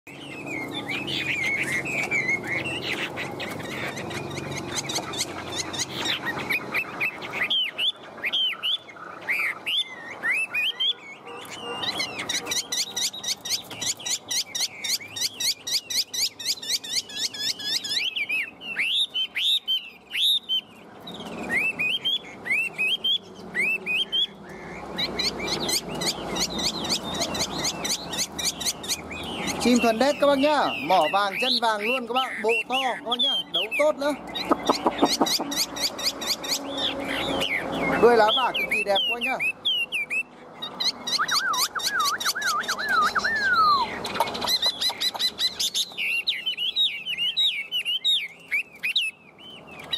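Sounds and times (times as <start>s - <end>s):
songbird whistling song: 0.1s - 49.9s.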